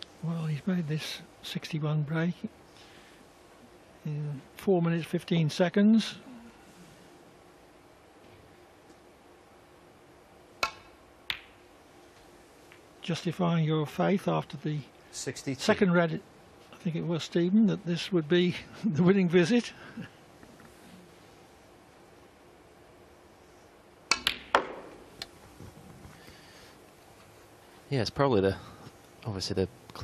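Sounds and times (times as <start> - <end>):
cue tip striking ball: 24.1 - 25.1
snooker balls clicking together: 24.1 - 25.3.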